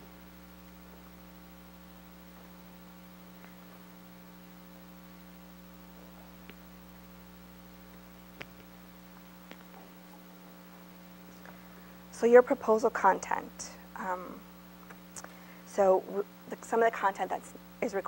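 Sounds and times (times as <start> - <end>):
electrical mains hum: 0.0 - 18.0
faint ticks: 6.4 - 6.8.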